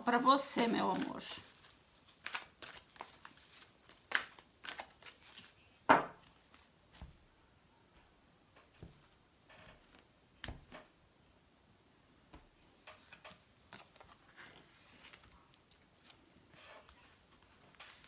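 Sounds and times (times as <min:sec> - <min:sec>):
cards being shuffled: 0:00.8 - 0:07.1, 0:13.1 - 0:18.0
deck knocking on table: 0:05.9 - 0:06.2.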